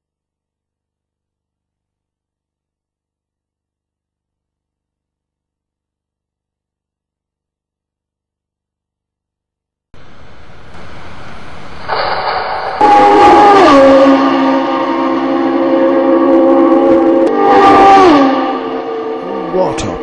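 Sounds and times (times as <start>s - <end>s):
loud horn-like chord: 12.8s - 20.0s.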